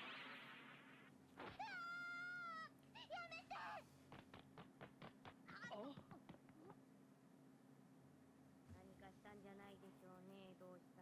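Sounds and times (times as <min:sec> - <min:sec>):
faint high cartoon voice crying: 0:01.6 - 0:03.8.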